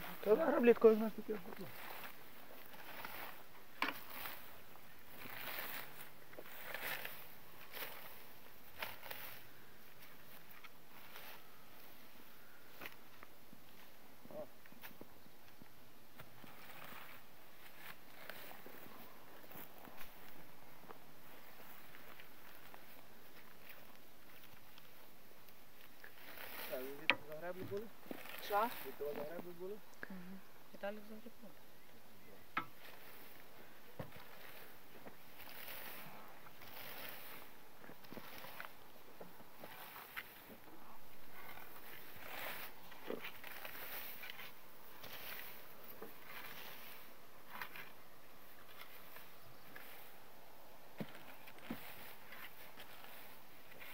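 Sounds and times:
rake scraping through grass: 0:00.0 - 0:13.1, 0:16.2 - 0:20.5, 0:21.2 - 0:25.1, 0:25.7 - 0:29.8, 0:32.6 - 0:53.9
footsteps on mown grass: 0:00.0 - 0:29.8, 0:32.3 - 0:53.9
small scattered crackles: 0:00.0 - 0:30.2, 0:32.5 - 0:53.9.

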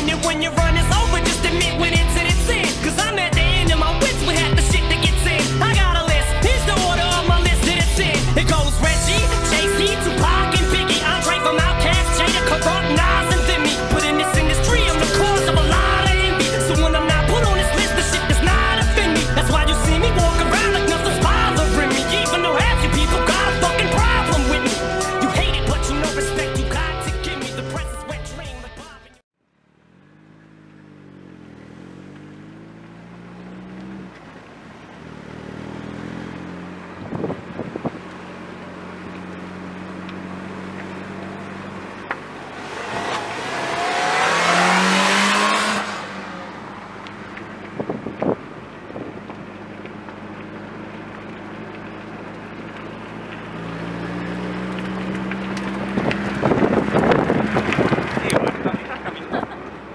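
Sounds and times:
car engine driving by: 0:00.0 - 0:59.9.

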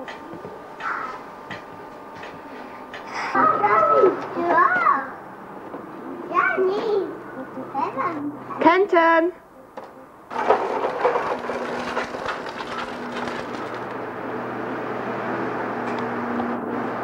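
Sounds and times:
plastic wheels rolling on concrete: 0:10.3 - 0:14.0.

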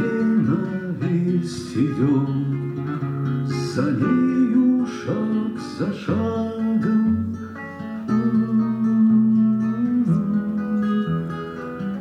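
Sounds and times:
man singing: 0:00.0 - 0:11.4
acoustic guitar: 0:00.0 - 0:12.0.

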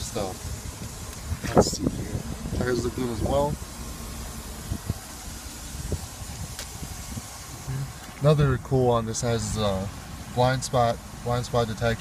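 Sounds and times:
low vehicle rumble: 0:00.0 - 0:12.0.

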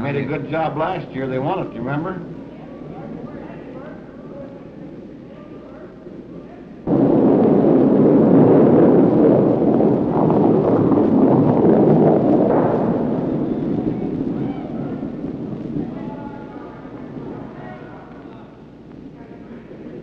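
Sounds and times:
curling stone rumbling on ice: 0:06.9 - 0:16.2.

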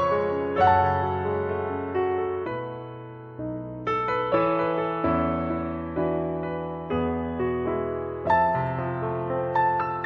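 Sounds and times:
slow piano ballad: 0:00.0 - 0:10.0.

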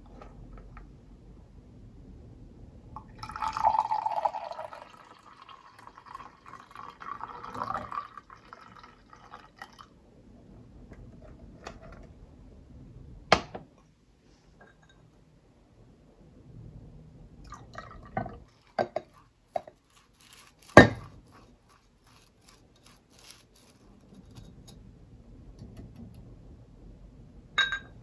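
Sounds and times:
glass carafe set on table: 0:03.0 - 0:08.9, 0:17.5 - 0:21.3, 0:27.6 - 0:28.0
coffee pouring into a mug: 0:03.0 - 0:10.0, 0:17.5 - 0:24.3.

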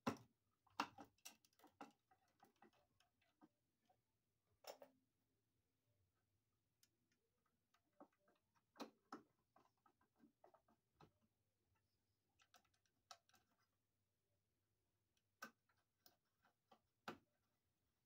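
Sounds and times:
faint clicks and knocks: 0:00.0 - 0:05.1, 0:06.8 - 0:13.8.

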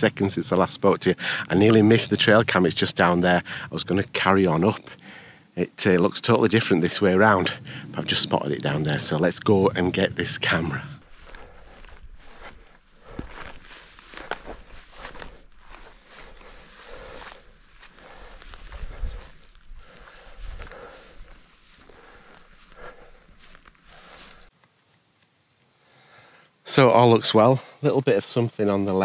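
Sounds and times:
footsteps through heather: 0:08.9 - 0:25.7.

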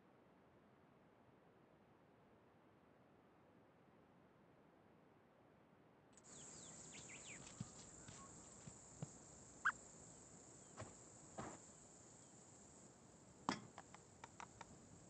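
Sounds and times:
short bird chirps: 0:06.2 - 0:08.6, 0:09.6 - 0:09.8
high insect drone: 0:06.2 - 0:15.0
light clicks: 0:13.7 - 0:14.8.

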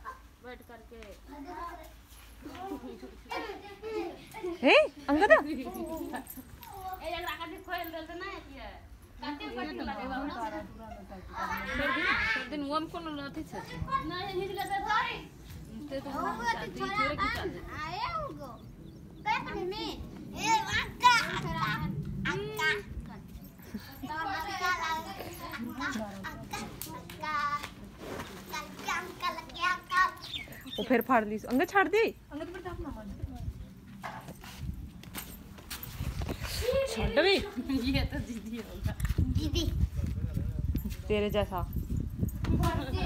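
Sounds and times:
young children chattering: 0:01.3 - 0:30.8
low rumble: 0:16.9 - 0:24.2.

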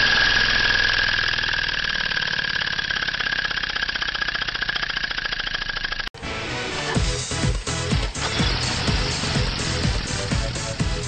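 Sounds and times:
background music: 0:06.2 - 0:11.0
engine exhaust pulses: 0:07.3 - 0:11.0.

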